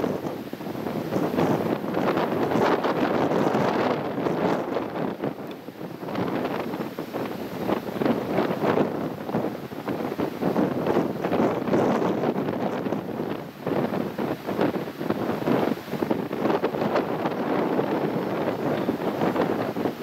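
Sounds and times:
wind on microphone: 0.0s - 20.0s.

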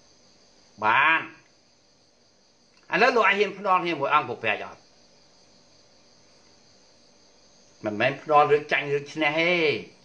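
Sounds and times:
faint high-pitched buzz: 0.0s - 10.0s
man speaking: 0.8s - 1.4s, 2.9s - 4.8s, 7.8s - 10.0s.

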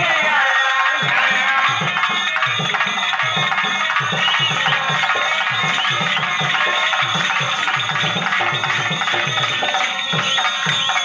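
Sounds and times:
fast hand-drum rhythm: 0.0s - 11.0s.

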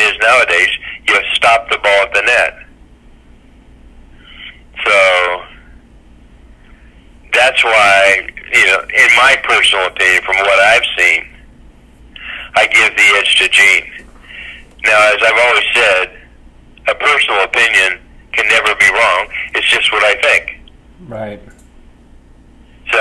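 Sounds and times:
person talking over telephone line: 0.0s - 2.7s, 4.4s - 5.6s, 7.3s - 11.4s, 12.2s - 21.4s.

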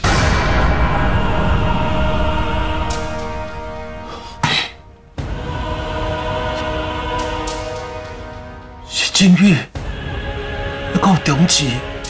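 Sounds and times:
loud hit: 0.0s - 6.0s
deep rumble: 0.0s - 6.4s.

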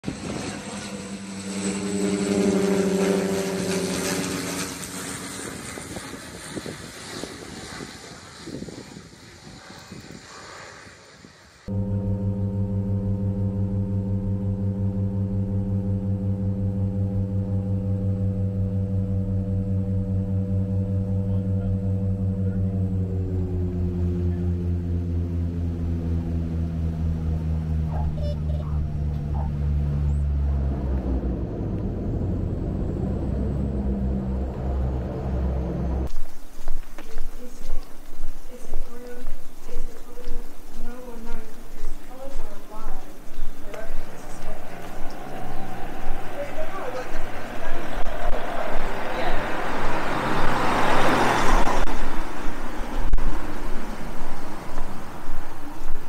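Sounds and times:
propeller drone inside cabin: 0.0s - 7.8s, 11.6s - 50.0s
propeller plane passing overhead: 0.0s - 56.0s.

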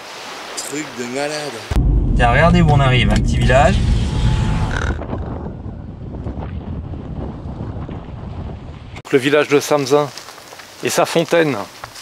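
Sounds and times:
car driving low rumble: 1.8s - 8.9s.

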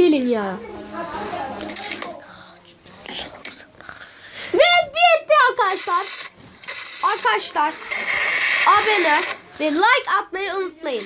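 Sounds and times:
boy mumbling and whispering: 1.0s - 6.2s
hissy crackles: 5.6s - 9.4s.

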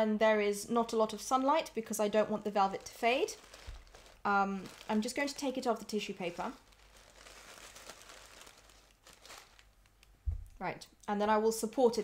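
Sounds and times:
tissue paper rustling: 2.2s - 10.0s.

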